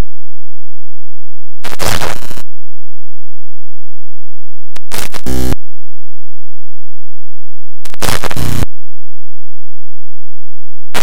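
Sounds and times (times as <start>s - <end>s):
heavy low buzz: 1.6s - 2.4s, 4.8s - 5.6s, 7.8s - 8.7s
loud distorted static burst: 1.6s - 2.4s, 4.9s - 5.6s, 7.9s - 8.6s.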